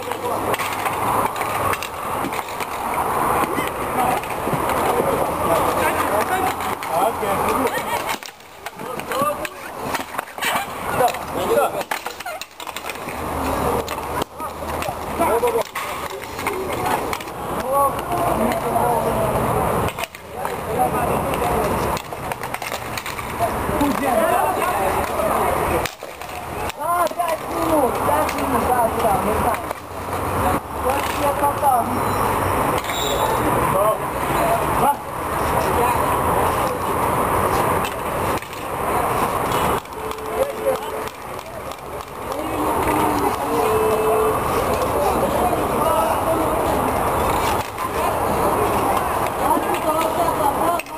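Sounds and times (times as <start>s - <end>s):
sticks knocking puck: 0.0s - 29.9s, 30.9s - 31.4s, 37.6s - 45.4s, 46.8s - 50.9s
inline skate wheels scraping: 0.0s - 33.5s, 34.2s - 50.9s
people calling out and talking: 0.0s - 50.9s
players calling out: 38.0s - 50.9s.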